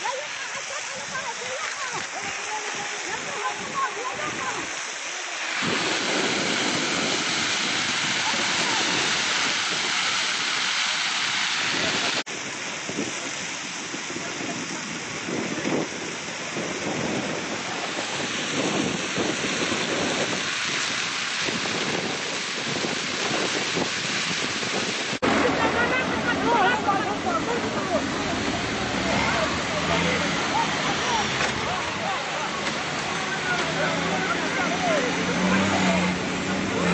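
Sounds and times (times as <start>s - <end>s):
fire crackling and rushing: 0.0s - 26.0s
wind on the microphone: 0.5s - 25.5s
people calling out: 25.3s - 36.9s.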